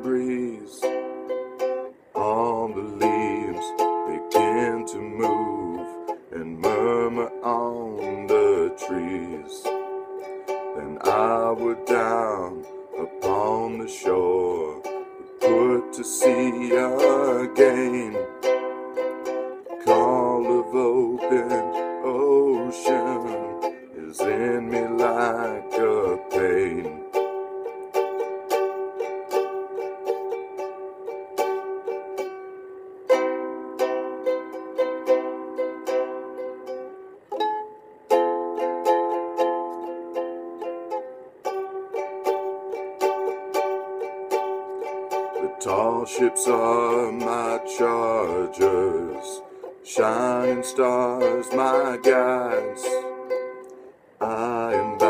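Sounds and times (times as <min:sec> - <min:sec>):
ukulele strumming: 0:00.0 - 0:55.0.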